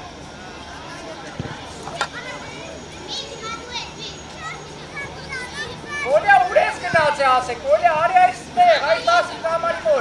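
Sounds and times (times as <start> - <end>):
children chattering: 0.0 - 10.0
high-pitched children's shouts: 2.0 - 7.2.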